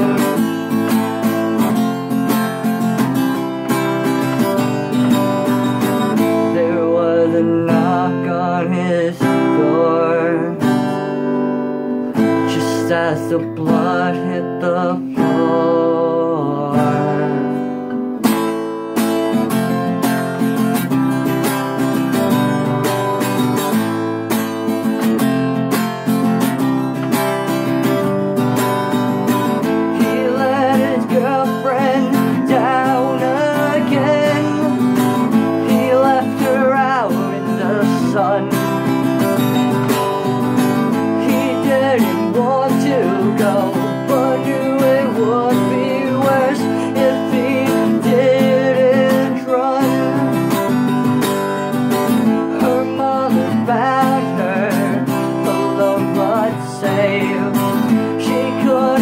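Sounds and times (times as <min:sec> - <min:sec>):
person singing: 0:00.0 - 0:18.2, 0:26.2 - 0:59.0
acoustic guitar strumming: 0:00.0 - 0:59.0.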